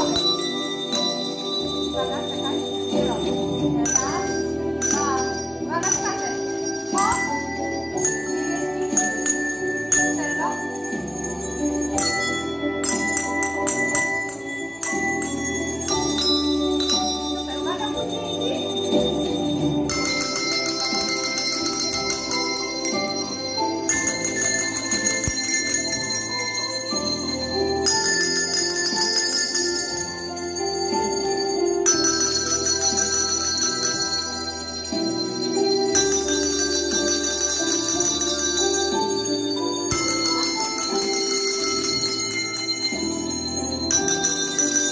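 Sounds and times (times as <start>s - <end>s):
desk bells ringing: 0.0s - 44.9s
slow music backing track: 0.0s - 44.9s.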